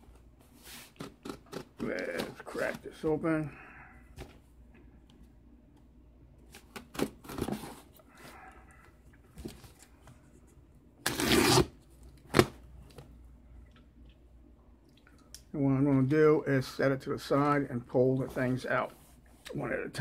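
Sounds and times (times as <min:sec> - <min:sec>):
tape tearing from cardboard: 0:11.0 - 0:12.5.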